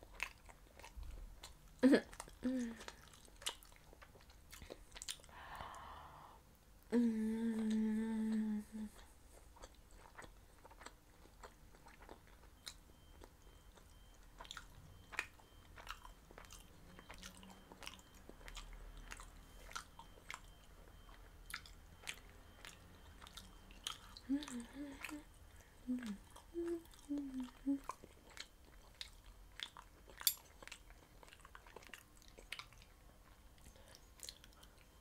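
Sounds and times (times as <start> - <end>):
chewing food: 0.0 - 5.4, 7.6 - 35.0
person humming: 1.8 - 2.9, 5.4 - 9.1, 24.2 - 28.0.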